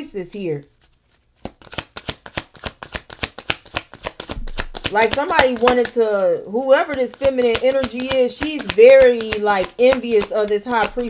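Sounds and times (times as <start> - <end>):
cards shuffling: 0.7 - 6.1, 6.7 - 11.0.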